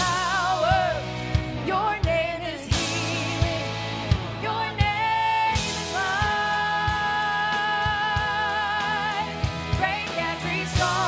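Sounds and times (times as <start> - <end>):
worship band music: 0.0 - 11.0.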